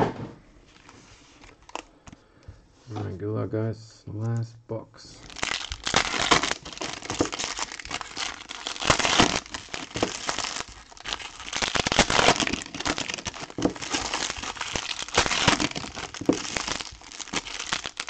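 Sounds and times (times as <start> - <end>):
foil wrappers crinkling: 5.2 - 18.0.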